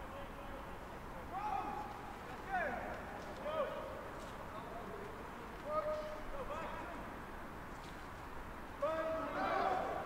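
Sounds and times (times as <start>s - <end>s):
faint crowd background: 0.0s - 10.0s.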